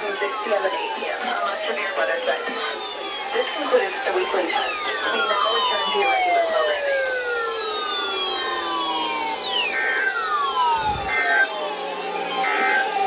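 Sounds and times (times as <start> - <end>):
siren-like descending tones: 0.0 - 13.0.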